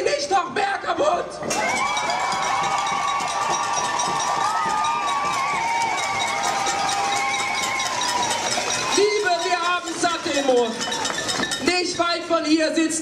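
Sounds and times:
crowd cheering: 1.4s - 11.8s
crowd clapping: 1.6s - 11.7s.

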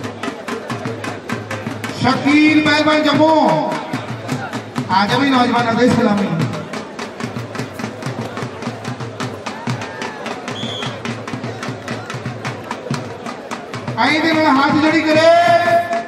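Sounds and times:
drum beaten fast: 0.0s - 16.0s.

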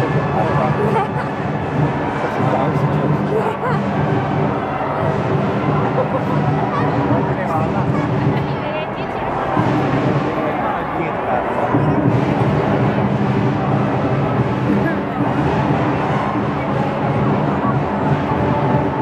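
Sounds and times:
marching band brass and drums: 0.0s - 19.0s
street crowd chatter: 0.0s - 19.0s.

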